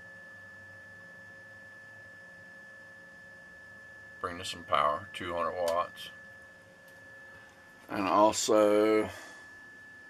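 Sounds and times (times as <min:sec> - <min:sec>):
faint electrical hum: 0:00.0 - 0:10.0
high thin electronic whine: 0:00.0 - 0:10.0.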